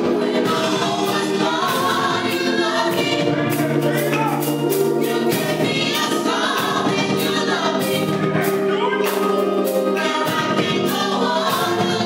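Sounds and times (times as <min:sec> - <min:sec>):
choir singing gospel: 0:00.0 - 0:12.0.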